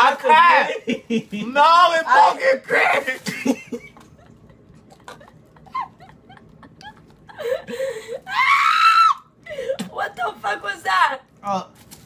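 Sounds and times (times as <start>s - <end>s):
person screaming in disgust: 8.3s - 9.3s.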